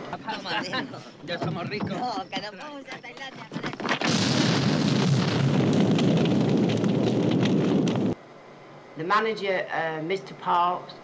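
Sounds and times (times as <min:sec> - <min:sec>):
loud rush of fire crackling: 0:03.7 - 0:08.2.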